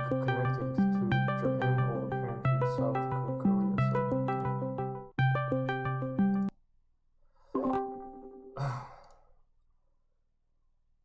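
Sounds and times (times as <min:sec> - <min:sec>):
man sighing: 0:08.5 - 0:09.3.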